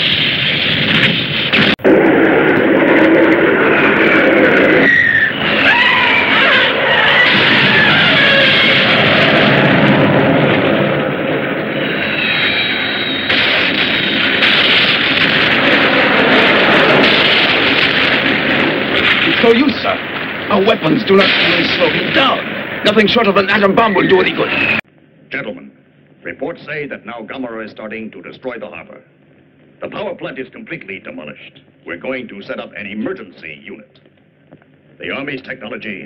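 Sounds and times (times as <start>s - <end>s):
jet aircraft noise: 0.0s - 24.8s
rumbling explosions: 0.0s - 24.8s.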